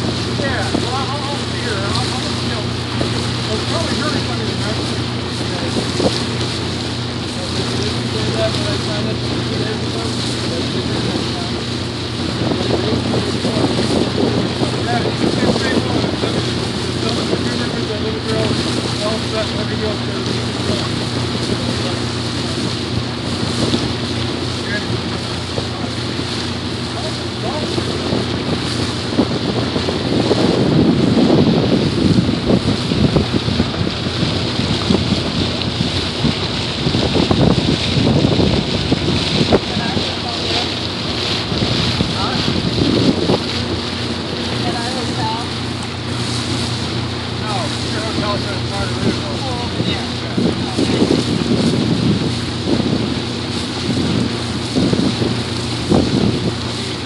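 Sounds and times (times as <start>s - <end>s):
boat engine humming: 0.0s - 57.0s
water washing past hull: 0.0s - 57.0s
wind buffeting microphone: 0.0s - 57.0s.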